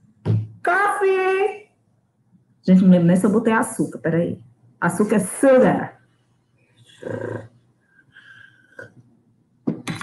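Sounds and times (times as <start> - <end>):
person slurping coffee: 7.0 - 7.4.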